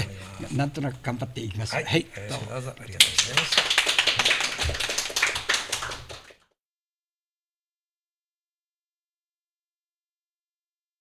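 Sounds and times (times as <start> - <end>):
people applauding: 3.0 - 6.4.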